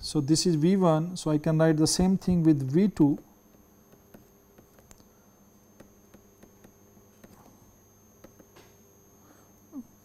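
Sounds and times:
faint electrical hum: 0.0 - 10.0
stylus ticking on tablet screen: 5.8 - 7.4.

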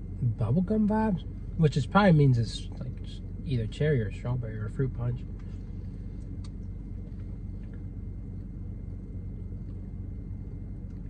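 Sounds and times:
car idling hum: 0.0 - 11.0.

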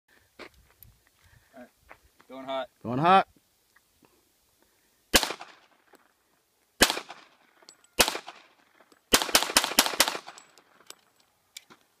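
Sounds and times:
pistol shots: 5.1 - 5.6, 6.8 - 7.3, 8.0 - 10.4.

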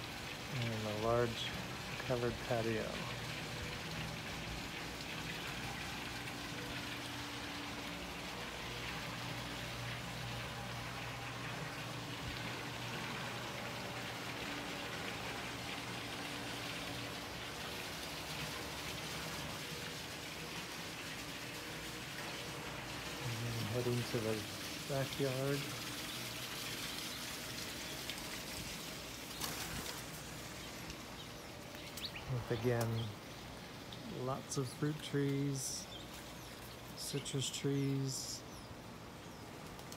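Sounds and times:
water splashing into pool: 1.6 - 32.2.

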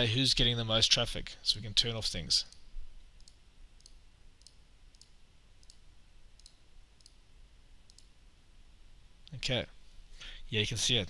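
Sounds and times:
computer mouse clicking: 3.2 - 5.8, 6.4 - 7.2, 7.9 - 8.1.

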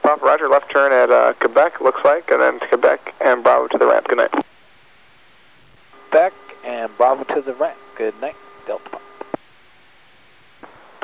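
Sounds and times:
faint radio hiss: 0.0 - 11.0
radio clicks: 6.0 - 9.4.

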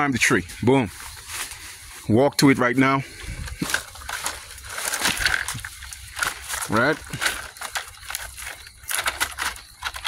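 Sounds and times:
dry palm fronds rustling: 0.0 - 10.0.

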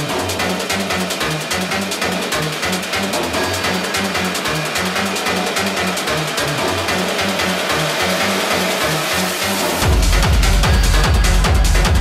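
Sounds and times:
hard techno over sound system: 0.0 - 12.0.

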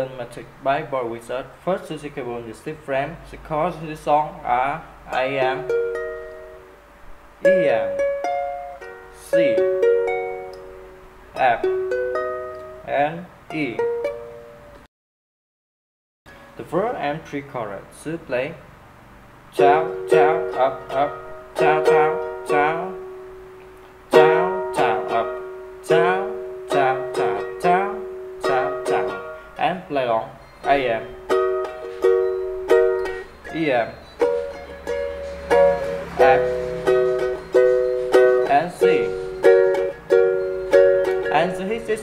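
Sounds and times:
ukulele strumming a chord: 7.4 - 12.9, 19.6 - 29.5, 30.7 - 33.3, 34.2 - 41.6.

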